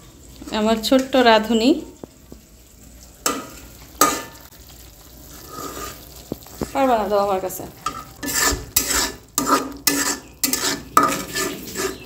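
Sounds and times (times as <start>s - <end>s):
onions sizzling in oil: 0.0s - 12.0s
metal spatula scraping: 3.2s - 4.5s, 5.2s - 7.1s, 7.7s - 12.0s.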